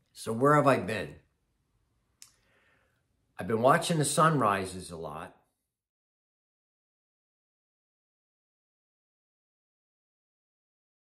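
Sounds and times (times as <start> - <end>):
man speaking: 0.0 - 1.3, 3.4 - 5.4.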